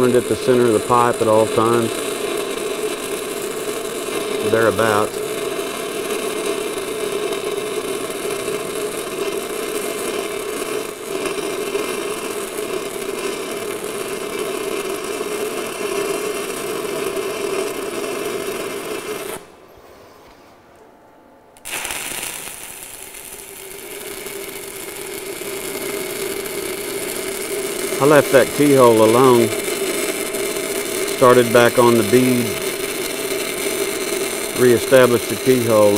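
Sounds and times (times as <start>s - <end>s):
welding arc crackling: 0.0s - 19.5s, 21.6s - 35.9s.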